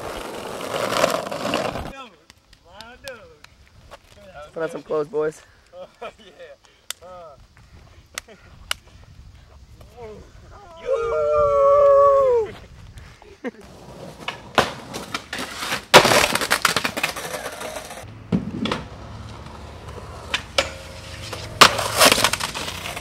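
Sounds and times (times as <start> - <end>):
man howling yell: 10.5 - 12.5.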